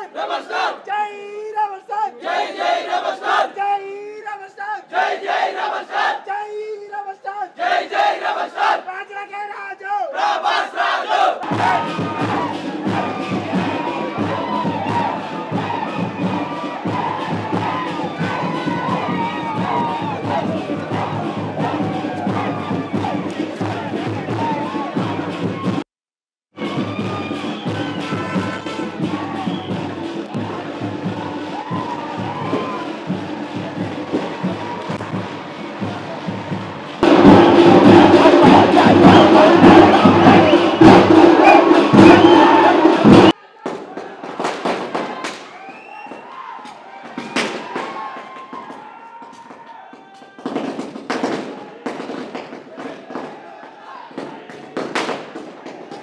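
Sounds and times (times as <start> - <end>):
crowd cheering and shouting: 0.0 - 6.4, 7.5 - 25.8, 26.6 - 56.0
music: 11.4 - 25.8, 26.6 - 43.4, 47.1 - 56.0
music playing: 26.6 - 43.4
firecrackers banging: 32.4 - 46.2, 47.1 - 49.5, 50.4 - 56.0.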